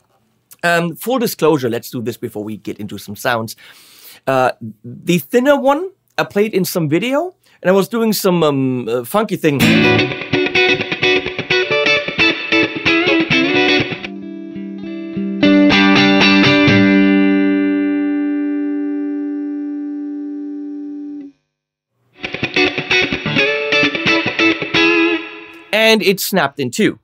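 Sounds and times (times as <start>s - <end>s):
electric guitar picked rhythm: 9.6s - 21.3s, 22.1s - 25.8s.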